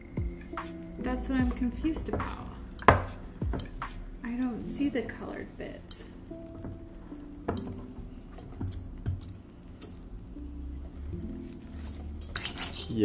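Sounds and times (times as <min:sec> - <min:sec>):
faint background music: 0:00.0 - 0:13.0
whisk ticking against glass: 0:01.4 - 0:03.8.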